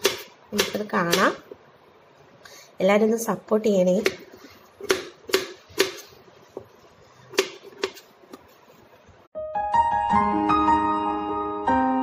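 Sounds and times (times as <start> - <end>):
piano-like keyboard music: 9.4 - 12.0.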